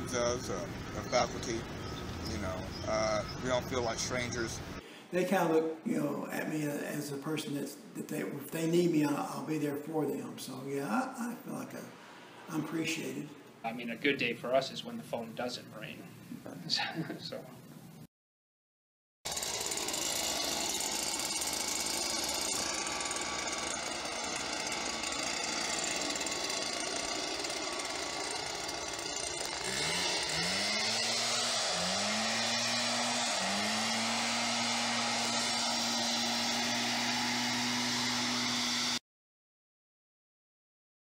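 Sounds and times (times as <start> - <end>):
leaf blower engine revving: 0.0 - 4.8, 19.3 - 39.0
leaf blower running: 0.0 - 4.8, 19.3 - 39.0.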